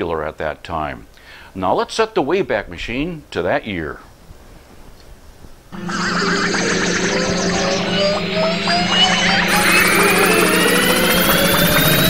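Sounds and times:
electronic whoosh with rising tones: 5.8s - 12.0s.

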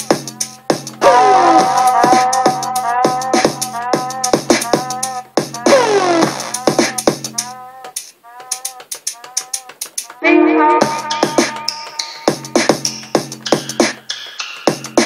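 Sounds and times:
electronic beat with synth stabs: 0.0s - 15.0s.

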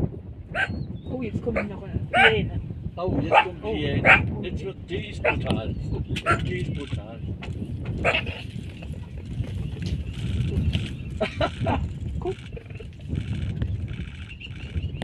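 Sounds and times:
steady low rumble: 0.0s - 15.0s
person laughing: 10.6s - 13.0s.

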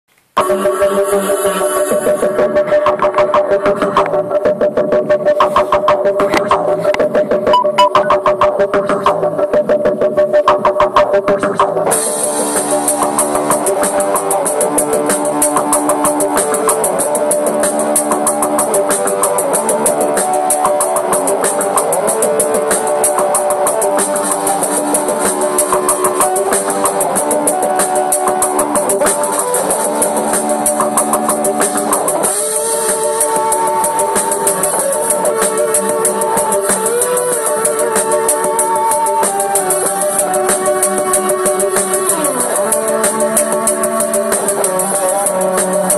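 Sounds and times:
steady drum beat: 11.9s - 45.9s
electric guitar playing: 12.1s - 45.9s.

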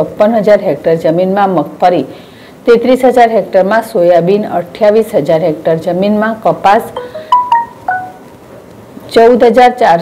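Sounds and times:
chime notes: 7.0s - 8.2s.

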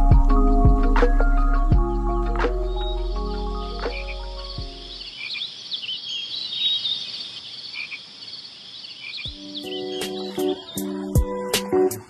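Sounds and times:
background music: 0.0s - 5.1s, 9.3s - 12.0s
frogs and insects chirping: 1.8s - 12.0s.

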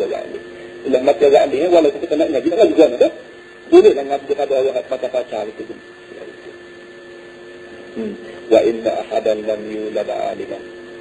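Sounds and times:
faint high whine: 0.0s - 11.0s
recording hum and hiss: 0.0s - 11.0s.

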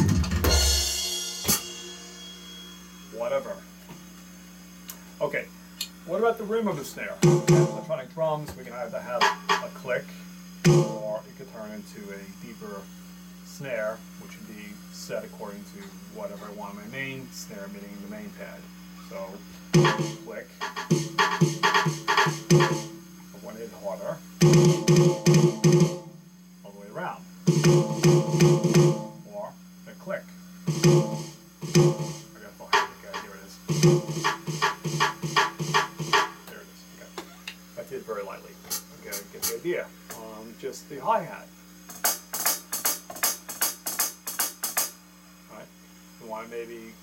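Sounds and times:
electronic snare drum drags: 0.0s - 4.1s, 7.2s - 8.0s, 9.0s - 9.8s, 10.6s - 11.2s, 19.1s - 23.1s, 23.8s - 26.3s, 27.4s - 29.5s, 30.1s - 36.6s, 38.7s - 40.2s, 41.9s - 45.0s.

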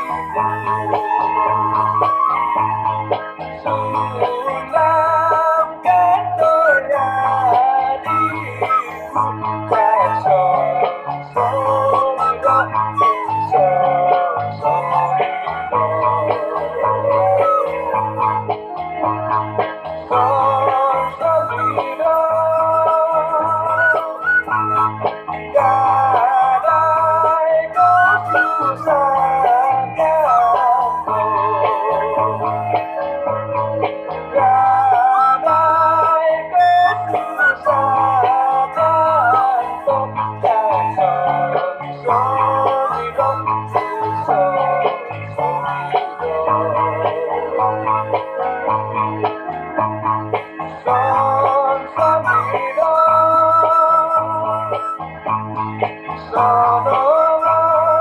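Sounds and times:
bamboo flute melody: 0.0s - 49.5s, 50.8s - 55.6s, 56.3s - 58.0s
plucked string backing: 0.0s - 58.0s.

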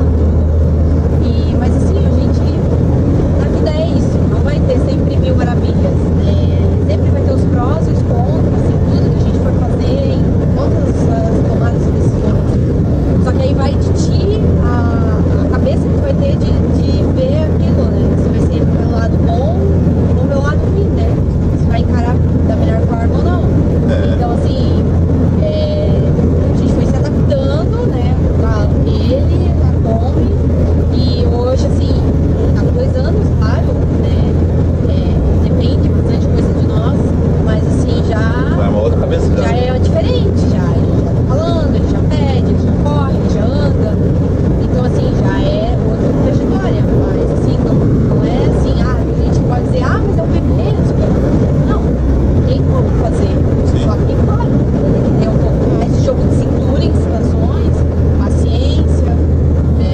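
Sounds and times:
van road and engine rumble: 0.0s - 59.9s
man talking: 23.8s - 24.4s, 38.6s - 39.7s.

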